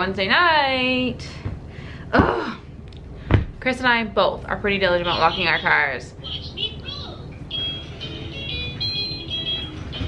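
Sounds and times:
tinkly melody of high notes: 0:07.5 - 0:10.0.

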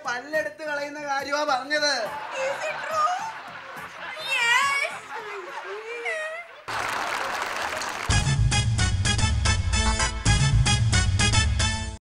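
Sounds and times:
applause: 0:02.1 - 0:08.4.

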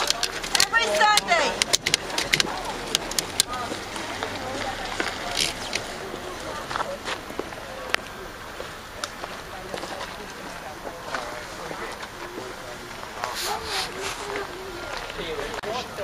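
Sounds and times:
distant people chattering: 0:00.0 - 0:16.0.

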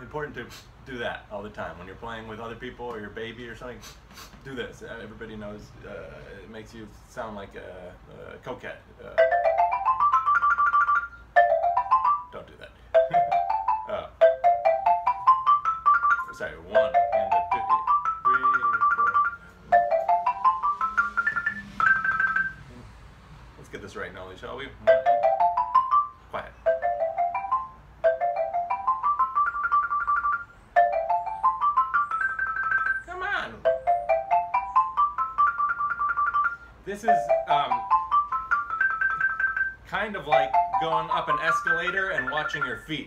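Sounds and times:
xylophone rising runs: 0:09.2 - 0:22.8, 0:24.8 - 0:43.0.

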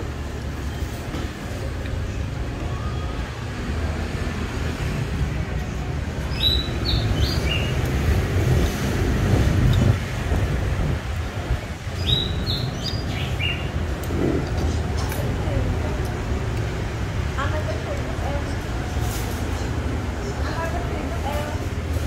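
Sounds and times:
steady low rumble: 0:08.0 - 0:19.0
small bird chirping: 0:12.0 - 0:13.7.

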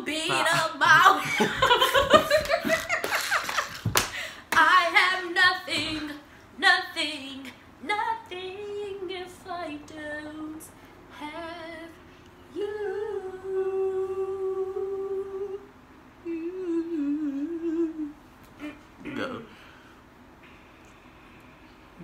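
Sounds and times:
girl humming and singing: 0:16.3 - 0:18.9.

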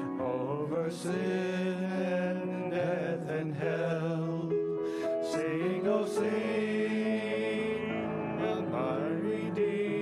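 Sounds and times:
piano accompaniment: 0:00.0 - 0:10.0
two men singing in harmony: 0:00.0 - 0:10.0.

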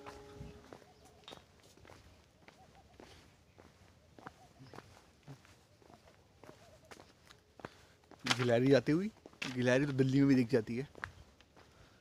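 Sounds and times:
faint footsteps on stone: 0:00.0 - 0:12.0.

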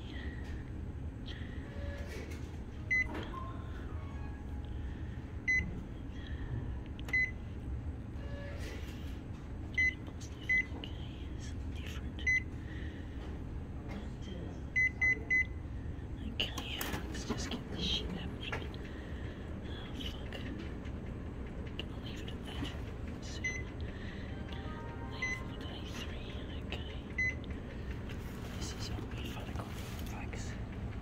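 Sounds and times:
steady low hum: 0:00.0 - 0:31.0.

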